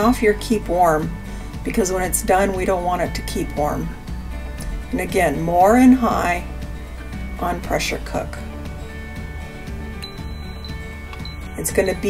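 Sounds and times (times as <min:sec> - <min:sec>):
background music: 0:00.0 - 0:12.0
pressure cooker beep: 0:10.0 - 0:12.0.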